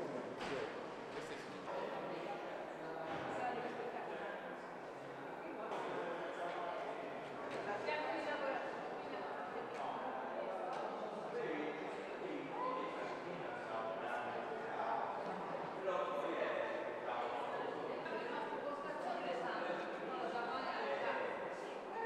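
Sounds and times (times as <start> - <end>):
murmur of overlapping voices: 0.0 - 22.0.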